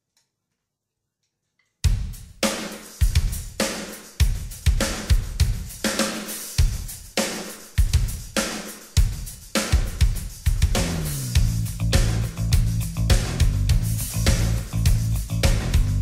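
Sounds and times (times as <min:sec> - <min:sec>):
drum kit rock beat: 0:01.8 - 0:16.0.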